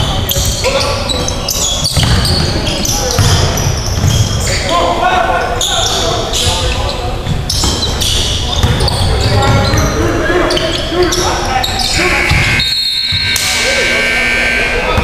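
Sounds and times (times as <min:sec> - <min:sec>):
players calling out: 0:00.0 - 0:15.0.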